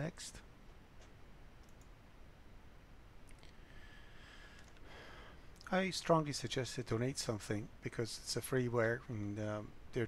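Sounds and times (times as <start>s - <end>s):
faint computer mouse clicks: 1.0s - 1.9s.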